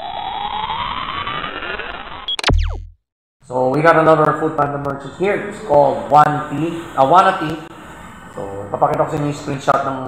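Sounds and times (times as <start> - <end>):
synthesized tone rising in pitch: 0.0 - 3.0.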